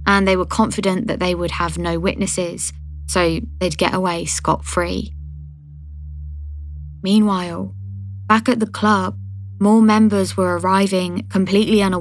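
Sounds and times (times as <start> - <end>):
low music drone: 0.0 - 12.0.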